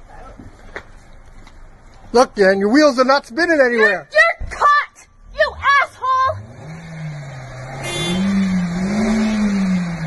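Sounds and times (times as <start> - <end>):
car engine revving: 5.4 - 10.0.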